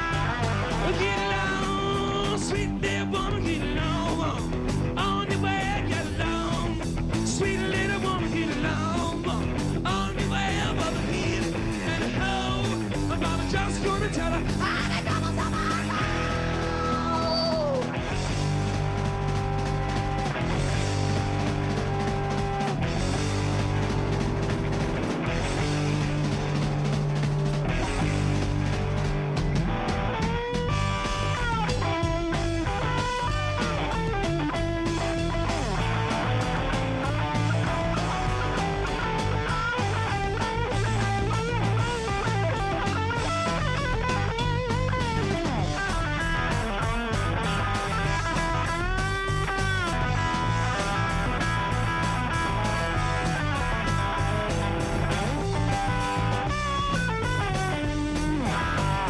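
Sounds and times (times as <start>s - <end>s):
lead electric guitar bending notes: 0.0s - 14.6s, 17.8s - 59.0s
bass and drums: 0.0s - 59.0s.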